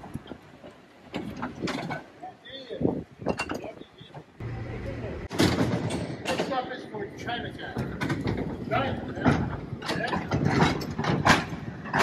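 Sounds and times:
voices: 2.2 - 5.4, 6.2 - 7.9.

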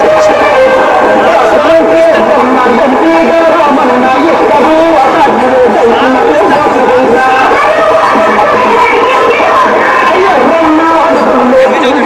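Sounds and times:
loud voices chattering: 0.0 - 12.0.

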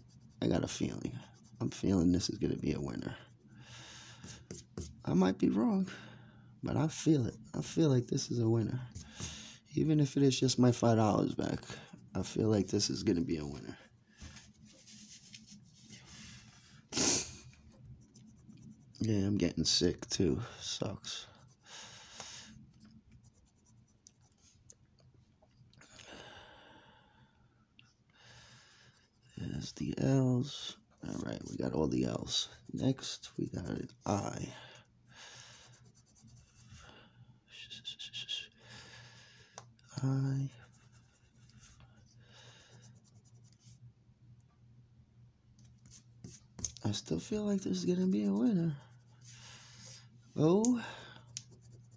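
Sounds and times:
low steady hum: 0.0 - 51.9.

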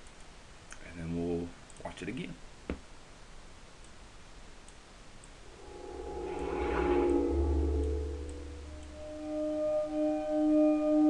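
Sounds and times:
deep bass rumble: 5.4 - 9.0
cinematic trailer music: 5.4 - 11.0
sustained bell-like tones: 5.4 - 11.0.

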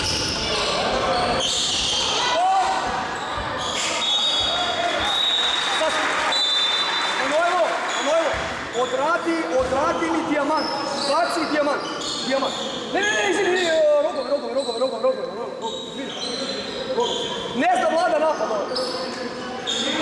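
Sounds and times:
voices calling out in gym: 0.0 - 20.0
sneakers squeaking on court: 8.0 - 12.9.

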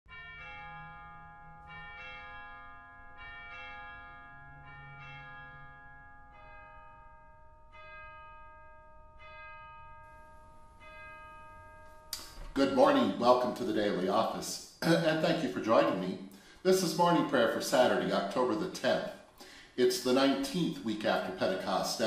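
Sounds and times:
bells ringing: 0.1 - 22.0.

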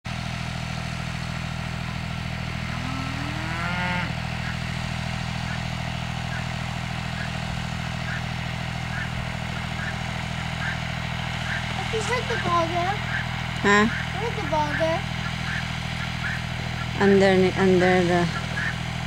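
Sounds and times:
tractor engine idling: 0.1 - 19.0
cow mooing: 2.5 - 4.6, 15.4 - 16.4.

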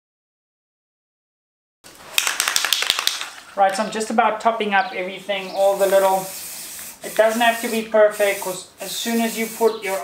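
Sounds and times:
rapid sharp clicks: 2.1 - 3.4
spray paint can hissing: 5.6 - 10.0.

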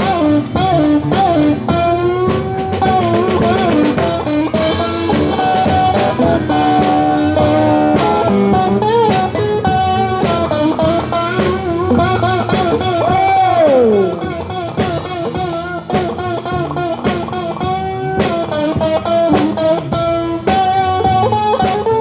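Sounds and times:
drum kit: 0.0 - 22.0
electric guitar lead: 0.0 - 22.0.

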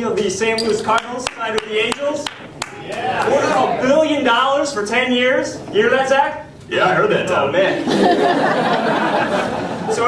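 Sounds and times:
hand claps: 0.9 - 3.4.

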